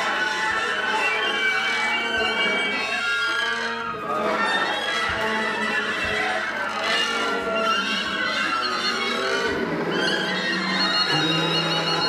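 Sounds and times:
wind instrument wavering high notes: 0.0s - 12.0s.

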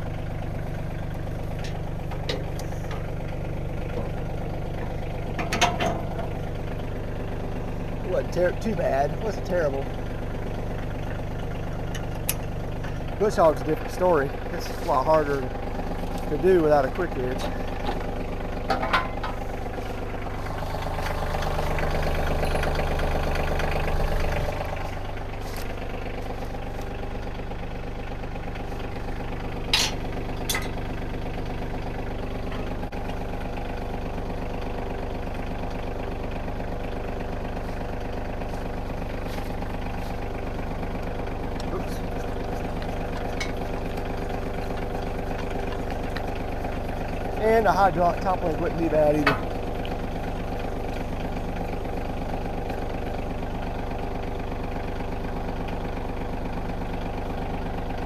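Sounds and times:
tractor diesel engine idling: 0.0s - 58.0s.

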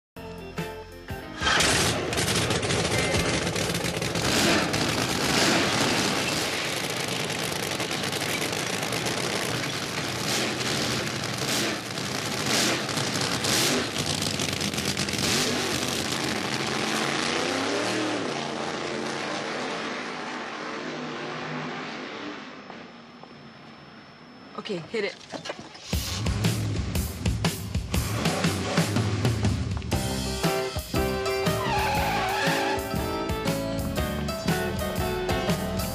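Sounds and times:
loud rough race car engine: 1.4s - 23.0s, 25.9s - 29.9s.

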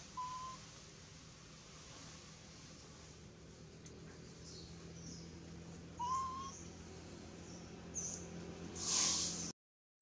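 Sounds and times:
whistle-like animal call: 0.0s - 0.6s, 6.0s - 6.6s
faint high chirps: 0.0s - 0.7s, 6.0s - 6.7s
low steady hum: 0.0s - 9.5s
brief hiss: 8.7s - 9.5s.

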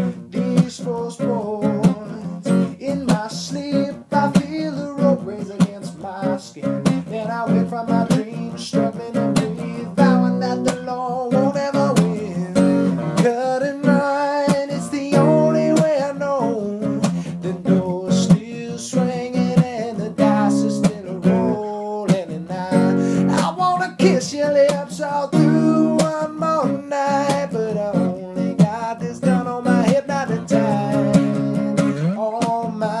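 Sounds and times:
acoustic guitar strumming: 0.0s - 33.0s
man singing: 0.0s - 33.0s.

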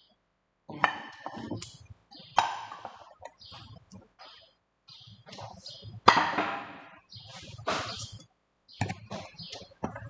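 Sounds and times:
ceramic bowls knocking: 0.8s - 1.7s, 2.3s - 3.4s.

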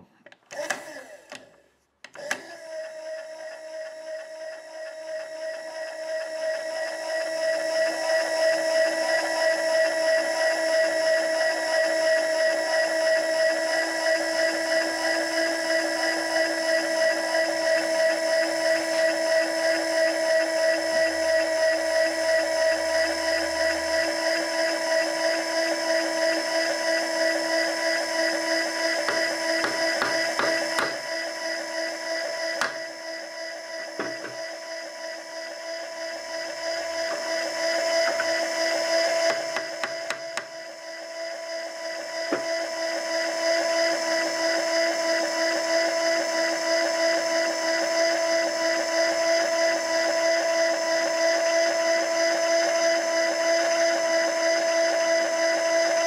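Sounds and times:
electric motor whine: 0.5s - 56.0s.

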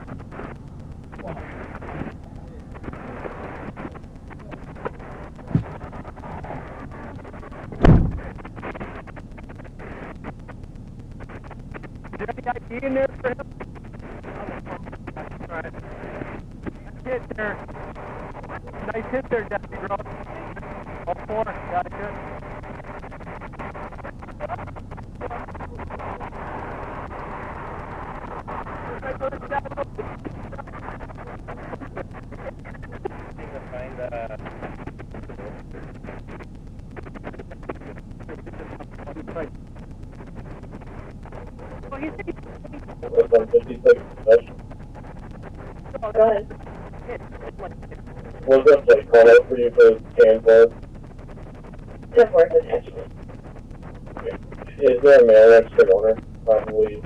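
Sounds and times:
background hum: 0.0s - 57.0s
muffled voices: 0.0s - 57.0s
person speaking clearly: 54.7s - 57.0s.

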